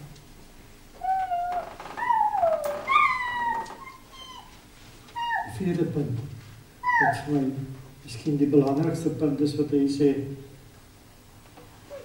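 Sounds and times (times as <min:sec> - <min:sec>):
high-pitched wavering cries: 0:01.0 - 0:04.6, 0:05.2 - 0:05.5, 0:06.8 - 0:07.3.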